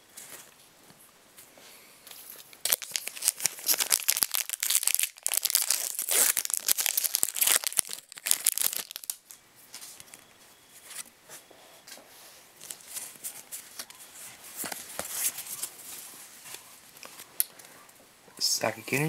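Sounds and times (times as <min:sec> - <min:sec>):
foil wrapper tearing and crinkling: 0:02.6 - 0:09.2.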